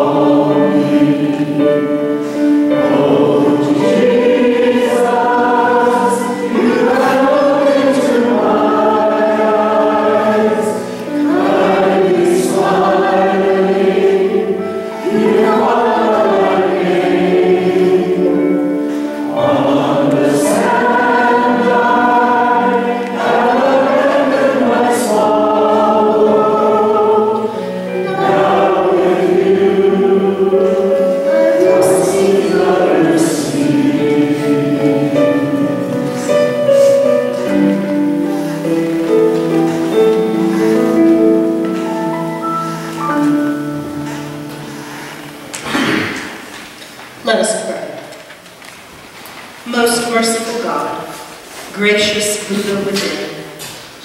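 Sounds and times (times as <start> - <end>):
choir singing: 0.0 - 46.5.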